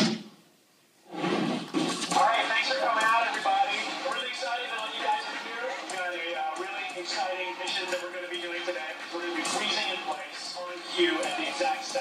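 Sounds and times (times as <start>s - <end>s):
background music: 1.1s - 12.0s
voice over loudspeakers: 2.1s - 12.0s.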